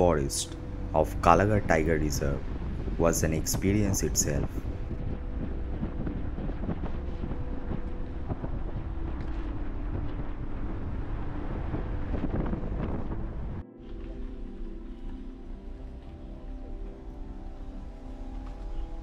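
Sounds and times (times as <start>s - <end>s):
background music: 0.0s - 19.0s
wind rushing through car window: 0.6s - 13.6s.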